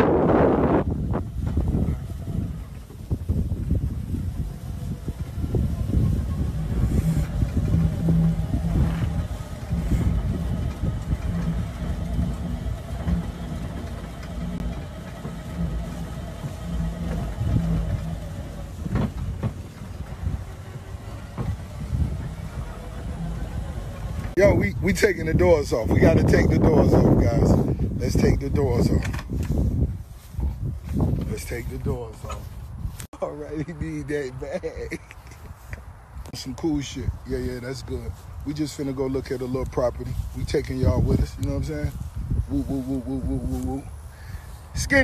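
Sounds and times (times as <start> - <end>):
vehicle engine running: 0.0 - 34.9, 35.6 - 45.0
heavy low rumble: 0.0 - 45.0.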